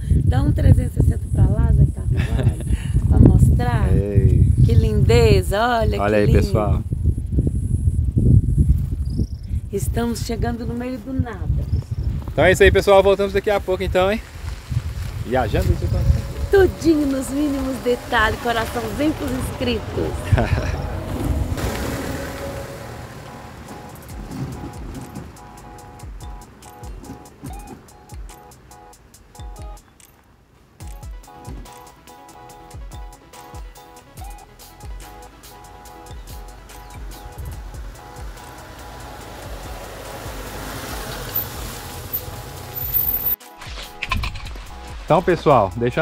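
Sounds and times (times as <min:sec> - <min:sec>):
wind buffeting microphone: 0:00.0 - 0:28.3
car driving past: 0:15.3 - 0:27.8, 0:37.7 - 0:43.2
soft background music: 0:15.3 - 0:30.2, 0:30.8 - 0:46.0.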